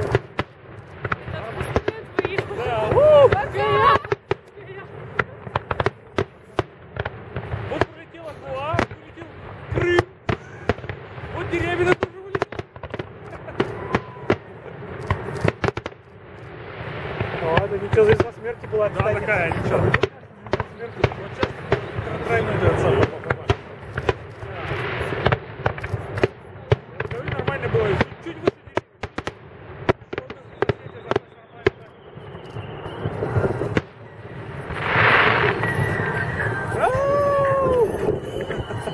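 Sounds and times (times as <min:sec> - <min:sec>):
fireworks bursting: 0:00.0 - 0:38.9
crowd voices: 0:01.0 - 0:15.5, 0:17.2 - 0:28.8, 0:30.2 - 0:38.9.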